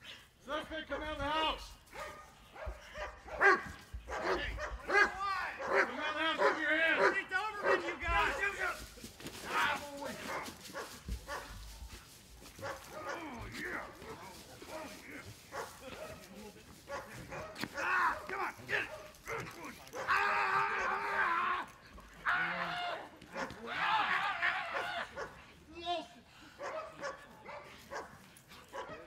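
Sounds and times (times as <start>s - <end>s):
man yelling: 0.5s - 1.8s, 3.4s - 10.5s, 12.9s - 15.3s, 17.7s - 26.2s.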